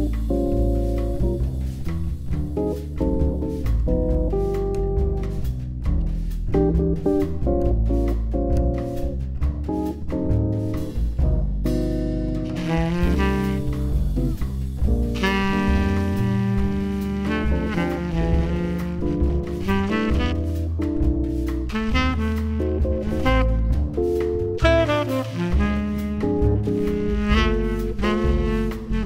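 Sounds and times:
jazz drums: 0.0s - 29.0s
plucked double bass: 0.0s - 29.0s
saxophone line: 12.4s - 29.0s.

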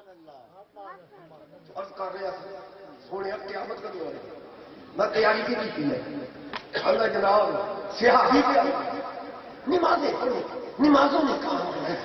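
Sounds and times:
man talking into a microphone: 0.0s - 12.0s.

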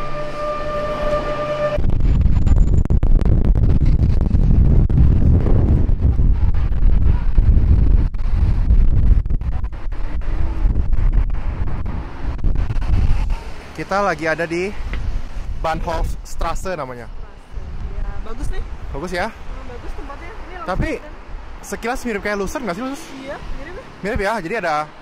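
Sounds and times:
wind buffeting microphone: 0.0s - 24.5s.

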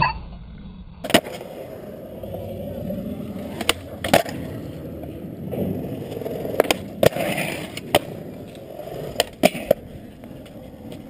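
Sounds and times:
skateboard clacking on landing: 1.0s - 11.0s
skateboard trucks grinding on ledge: 1.0s - 11.0s
skateboard wheels rolling on concrete: 1.0s - 11.0s.

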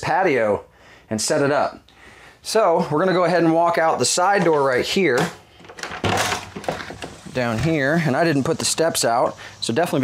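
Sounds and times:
door swinging open: 4.3s - 7.9s.

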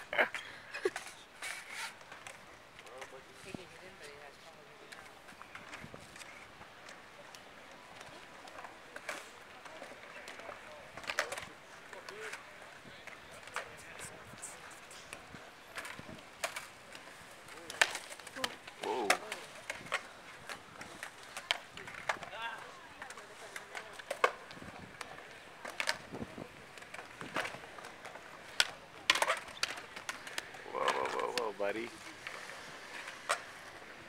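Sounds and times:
skateboards clacking on concrete: 0.0s - 34.0s.

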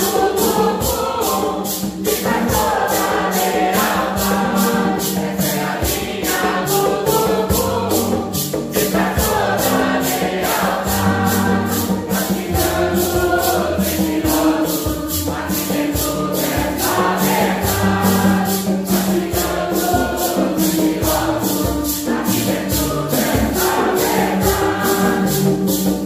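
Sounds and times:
choir singing a hymn: 0.0s - 26.0s
maracas shaken: 0.0s - 26.0s
strummed guitars: 0.0s - 26.0s.

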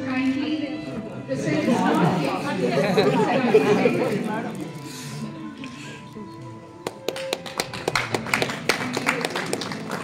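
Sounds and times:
people talking at once: 0.0s - 6.8s.

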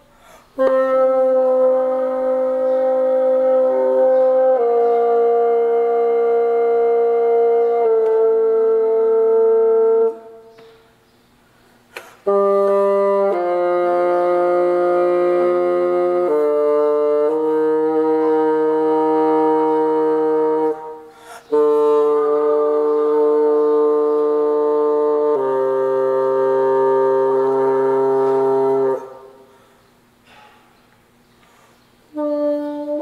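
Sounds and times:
bassoon sustained notes: 0.0s - 10.6s, 12.2s - 29.6s, 32.1s - 33.0s.

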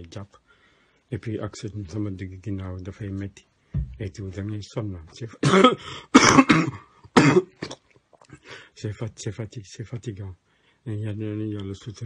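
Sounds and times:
man coughing: 5.4s - 7.8s.

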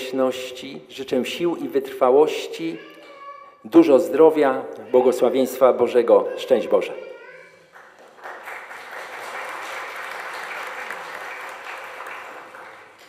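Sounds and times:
audience applauding: 7.6s - 13.0s.

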